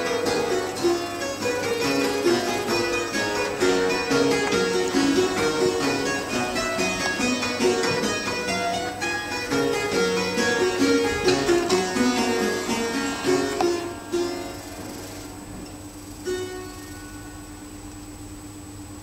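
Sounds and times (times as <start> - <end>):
clavichord playing: 0.0 - 17.5.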